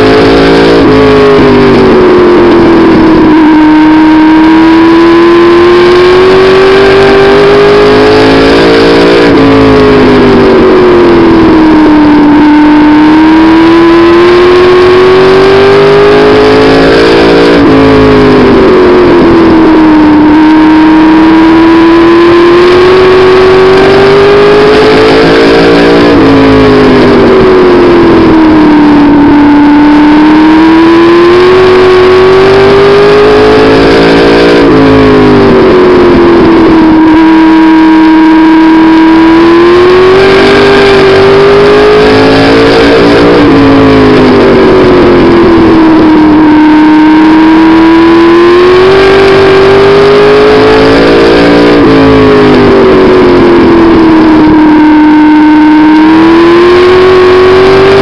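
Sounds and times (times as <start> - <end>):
race car engine revving: 0.0 - 58.0.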